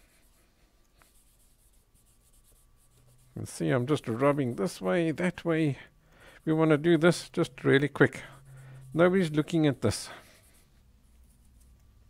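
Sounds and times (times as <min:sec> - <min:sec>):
cloth rubbing on paper: 0:00.0 - 0:05.1, 0:06.5 - 0:11.7.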